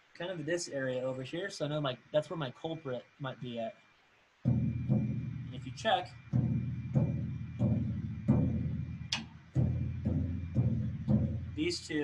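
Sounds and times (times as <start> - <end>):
drumstick tapping floor tom: 4.5 - 12.0.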